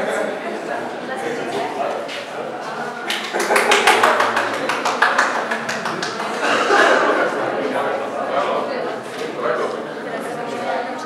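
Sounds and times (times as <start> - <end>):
murmur of voices: 0.0 - 11.0
sharp hand claps: 3.0 - 6.6.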